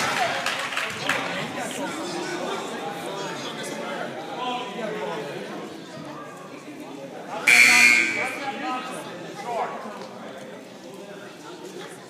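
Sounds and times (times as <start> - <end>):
scoreboard buzzer: 7.5 - 8.4.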